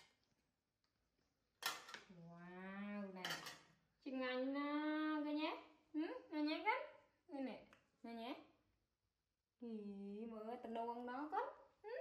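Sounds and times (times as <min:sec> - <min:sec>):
tongs clinking against plate and wok: 0:03.2 - 0:03.7.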